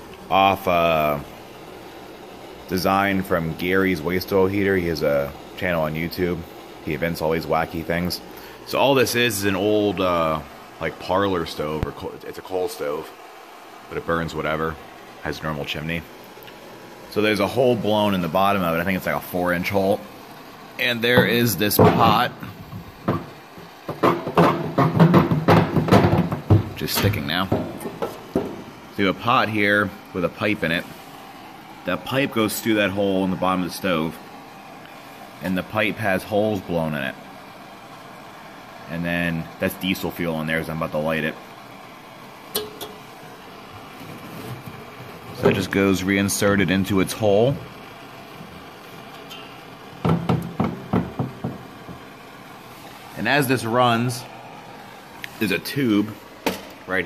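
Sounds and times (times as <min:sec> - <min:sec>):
man speaking: 0:00.3 - 0:01.3, 0:02.7 - 0:13.1, 0:13.9 - 0:16.1, 0:17.1 - 0:20.1, 0:20.8 - 0:22.6, 0:26.8 - 0:27.7, 0:29.0 - 0:30.9, 0:31.9 - 0:34.2, 0:45.4 - 0:47.7, 0:53.2 - 0:54.4, 0:55.4 - 0:56.2
metal pot clunking on iron stove: 0:23.0 - 0:28.7, 0:42.5 - 0:43.0, 0:49.3 - 0:52.0.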